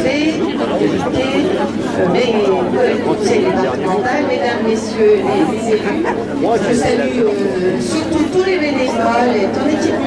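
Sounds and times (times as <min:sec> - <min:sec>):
crowd chatter: 0:00.0 - 0:10.0
woman speaking into a microphone: 0:00.0 - 0:10.0.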